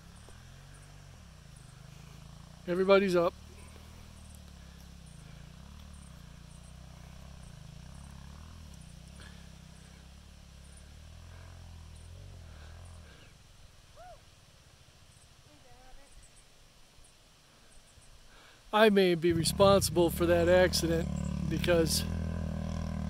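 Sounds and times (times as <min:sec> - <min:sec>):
faint engine idle hum: 0:00.0 - 0:23.0.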